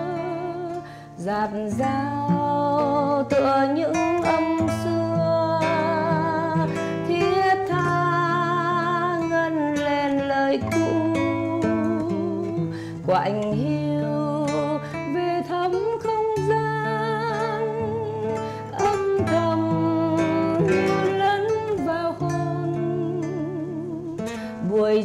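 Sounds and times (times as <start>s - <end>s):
classical guitar playing slow melody: 0.0s - 25.0s.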